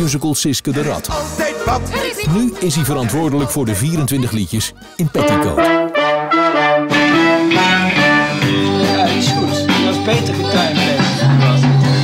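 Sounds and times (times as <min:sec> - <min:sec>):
brass and saxophone held chords: 0:04.7 - 0:12.0.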